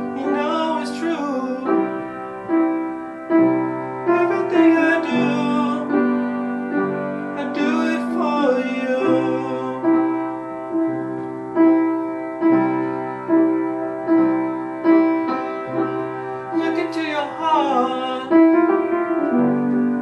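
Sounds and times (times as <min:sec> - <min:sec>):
man singing: 0:00.0 - 0:02.1, 0:04.0 - 0:06.3, 0:07.4 - 0:10.4, 0:16.5 - 0:19.4
piano chords: 0:00.0 - 0:20.0.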